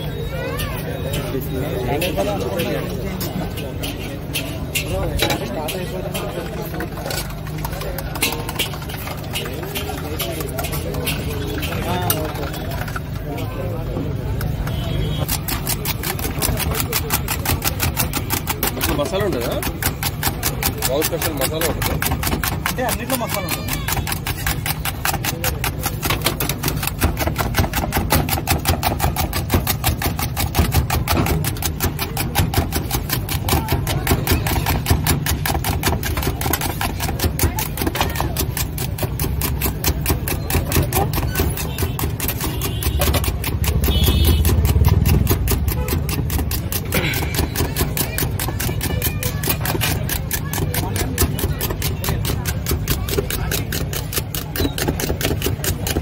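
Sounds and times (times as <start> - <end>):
eggs beaten in a steel bowl: 0.0 - 56.0.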